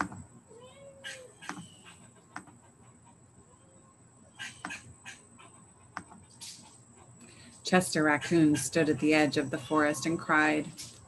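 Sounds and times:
cat meowing: 0.5s - 1.3s.

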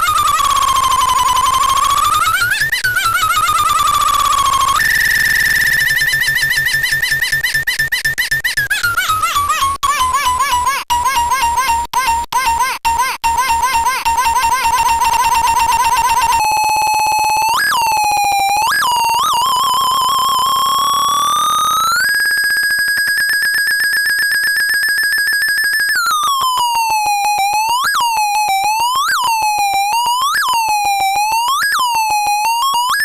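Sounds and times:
buzzy electronic toy tone: 0.0s - 33.0s.

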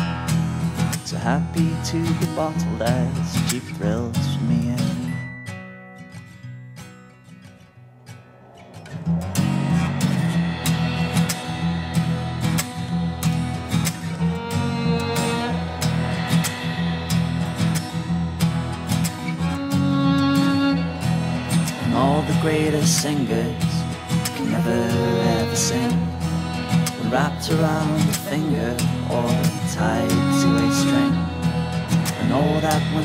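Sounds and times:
folk band with guitar and violin: 0.0s - 6.2s, 8.4s - 33.0s.

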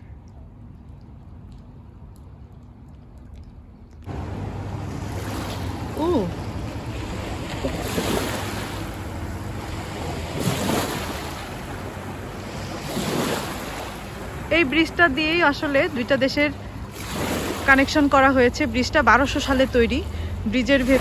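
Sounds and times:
river water rushing: 4.1s - 21.0s.

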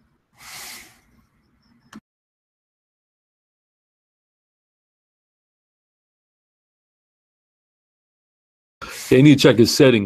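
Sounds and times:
breathy hiss: 0.4s - 1.2s, 8.8s - 9.2s.

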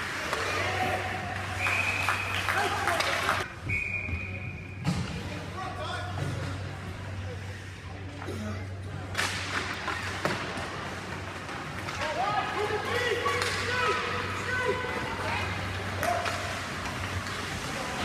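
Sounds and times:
hockey sticks and puck knocks: 9.1s - 14.1s, 15.8s - 18.0s.

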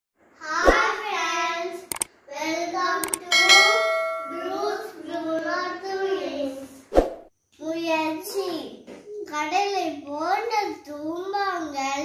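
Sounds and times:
sharp clicks: 3.0s - 3.3s
bell-like ring: 3.1s - 5.0s.

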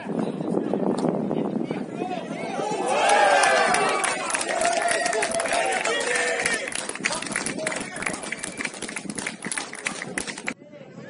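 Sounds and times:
distant players shouting and cheering: 1.4s - 11.0s.

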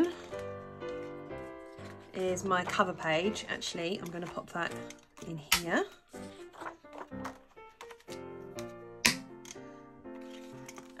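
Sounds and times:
background music: 0.0s - 11.0s
metal binder rings snapping: 3.9s - 9.6s, 10.3s - 11.0s.

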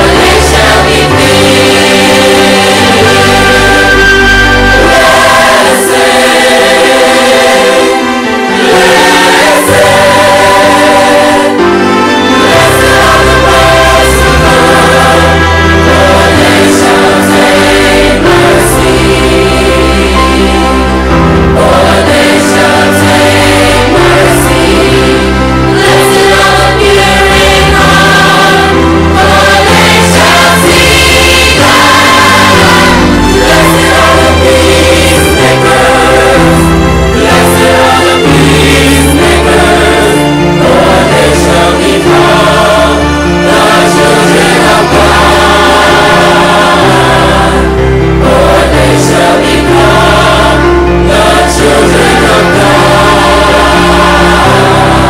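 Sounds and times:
gospel choir singing: 0.0s - 55.0s.

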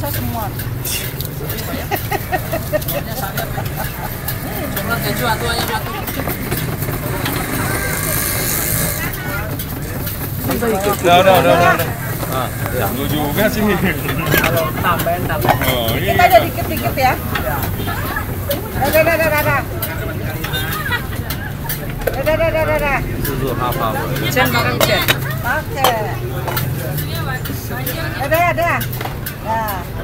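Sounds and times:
faint background voices: 0.0s - 30.0s
low engine rumble: 0.0s - 30.0s.

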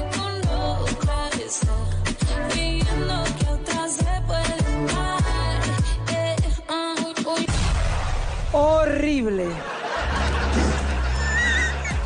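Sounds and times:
laughter: 9.5s - 12.0s.

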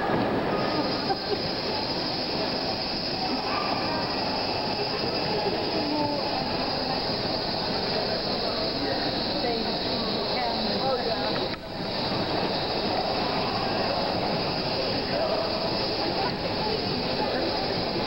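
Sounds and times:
noisy wash over loudspeakers: 0.0s - 18.0s.

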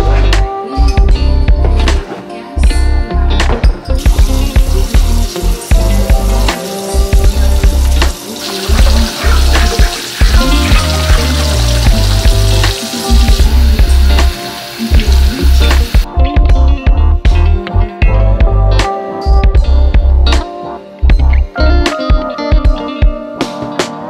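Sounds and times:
background music with heavy bass beat: 0.0s - 24.0s
drinking glasses being washed: 4.0s - 16.1s
tap water running into sink: 4.0s - 16.1s.

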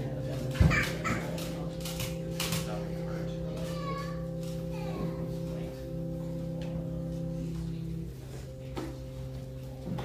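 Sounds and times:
keyboard chord: 0.0s - 10.0s.

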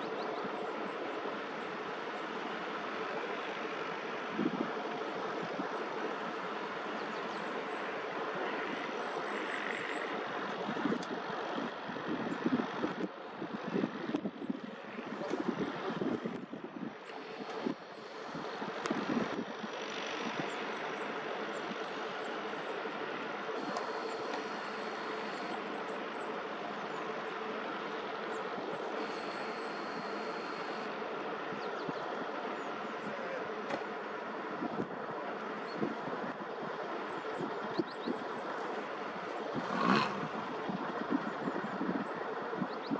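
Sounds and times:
wind buffeting microphone: 10.6s - 20.6s, 39.2s - 42.9s
distant heavy machinery rumble: 17.0s - 42.9s.

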